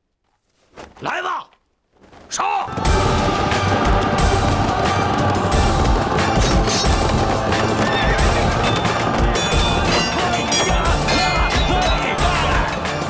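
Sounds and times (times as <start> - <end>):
horses galloping: 2.0 - 13.0
loud battle music: 2.7 - 13.0
horses whinnying: 2.8 - 12.8.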